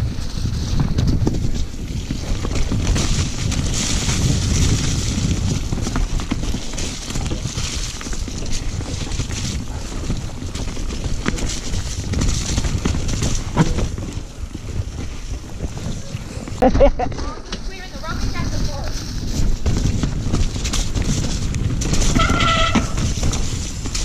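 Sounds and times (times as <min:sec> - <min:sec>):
bike rattle: 0:00.0 - 0:24.0
wind on microphone: 0:00.0 - 0:24.0.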